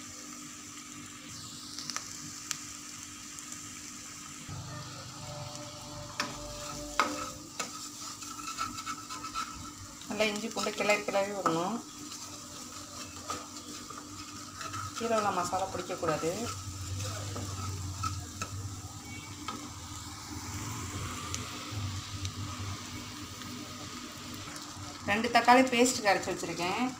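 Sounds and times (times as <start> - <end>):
masala sizzling in oil: 0.0 - 26.9
wooden spatula scraping pan: 6.0 - 19.6.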